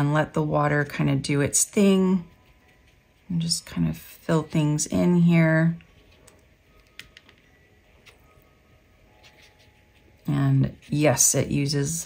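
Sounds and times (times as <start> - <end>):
brush dabbing on wet paper: 1.3 - 5.0, 9.2 - 12.0.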